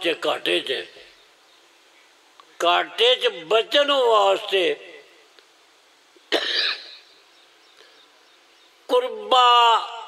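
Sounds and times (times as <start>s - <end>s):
man coughing into microphone: 6.3s - 7.1s.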